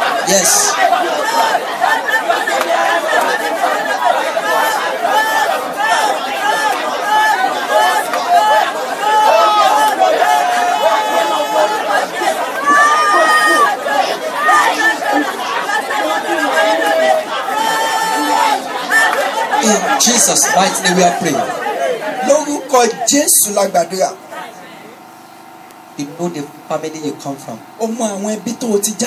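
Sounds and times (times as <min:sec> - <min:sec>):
congregation praying aloud: 0:00.0 - 0:29.0.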